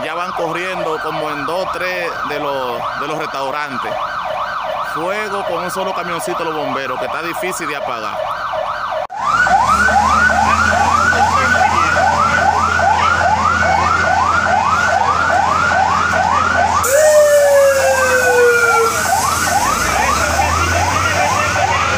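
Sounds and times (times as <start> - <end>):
siren yelping: 0.0 - 21.9.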